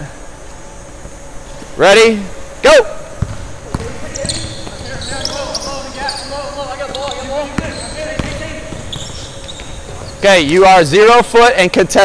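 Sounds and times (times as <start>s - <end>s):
players calling out: 2.7s - 11.4s
basketball knocks: 3.2s - 10.6s
sneakers squeaking on gym floor: 3.2s - 11.0s.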